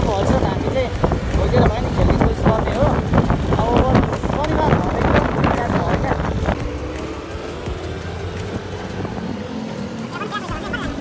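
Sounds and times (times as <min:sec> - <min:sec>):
motorbike engine: 0:00.0 - 0:11.0
wind on microphone: 0:00.0 - 0:11.0
pitched voice-like sounds: 0:10.0 - 0:11.0.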